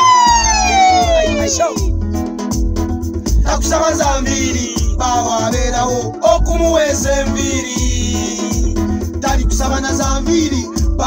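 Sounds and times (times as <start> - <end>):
pop backing beat with heavy bass: 0.0 - 11.0.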